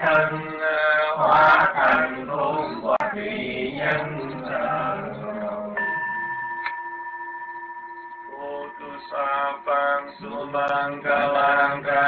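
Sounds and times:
person chanting: 0.0 - 6.1, 8.3 - 12.0
bell ringing: 3.9 - 11.4.

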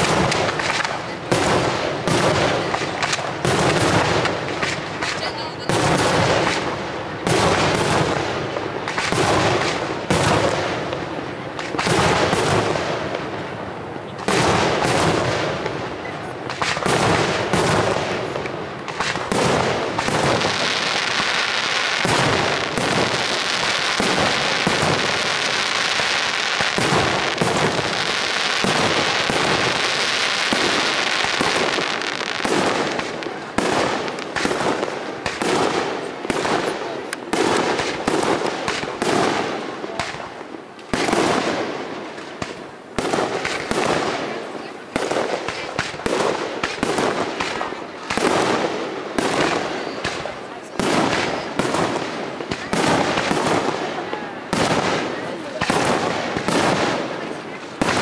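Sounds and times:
fireworks bangs and crackle: 0.0 - 58.0.

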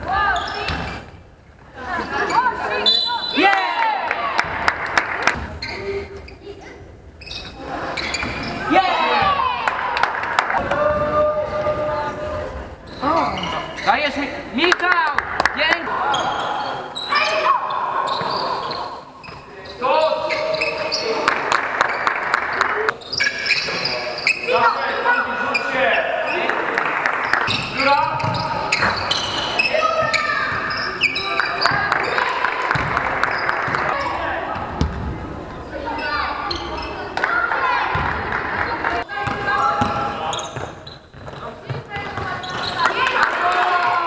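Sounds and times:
players' voices echoing: 0.0 - 6.8, 7.4 - 44.0
basketballs bouncing on court: 9.0 - 9.6, 27.2 - 35.2, 36.5 - 43.2.

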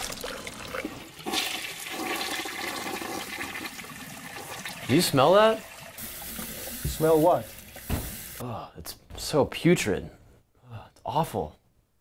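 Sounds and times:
toilet flushing: 0.0 - 8.4.

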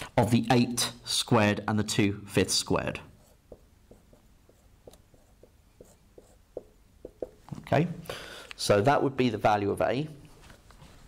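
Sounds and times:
marker writing on whiteboard: 2.9 - 7.5.

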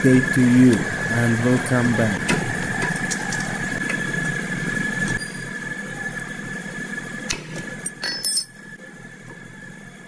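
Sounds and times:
machinery high whine: 0.0 - 10.0
sharp metallic clinks: 7.9 - 8.6.

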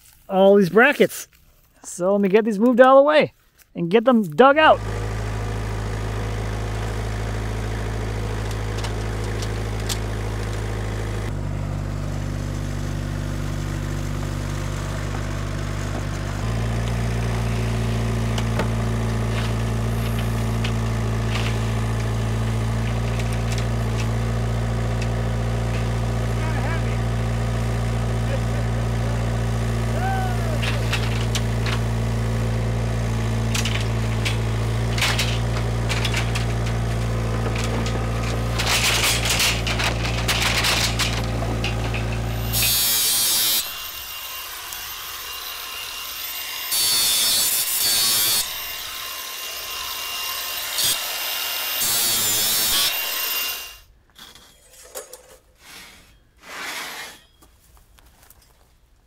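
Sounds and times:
skid steer engine running: 4.7 - 46.8
steel bars scraping over pile: 17.9 - 26.1, 30.6 - 44.1, 51.8 - 57.6
steel bars knocking and clanking: 30.6 - 31.9, 33.4 - 42.7.

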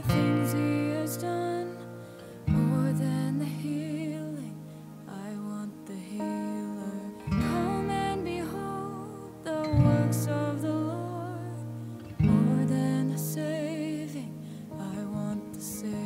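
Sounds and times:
acoustic guitar fingerpicked: 0.0 - 16.0.

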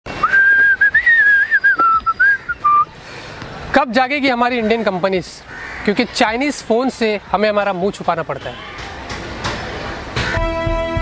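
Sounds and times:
man whistling a tune: 0.1 - 2.9.

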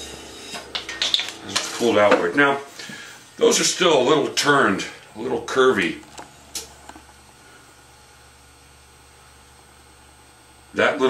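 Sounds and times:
clay bowl lifted off wheel: 0.0 - 3.0
faint machine hum: 0.0 - 11.0.

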